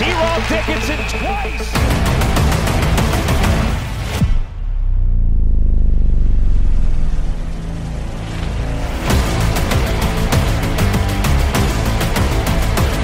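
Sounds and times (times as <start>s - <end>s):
music with heavy beat: 1.1s - 4.2s, 9.1s - 13.0s
deep low boom: 4.0s - 10.6s.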